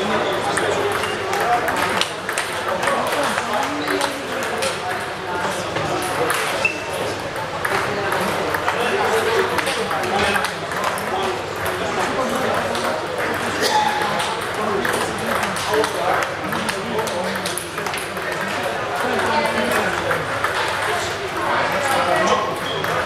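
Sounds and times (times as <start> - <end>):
table tennis balls clicking: 0.3 - 23.0.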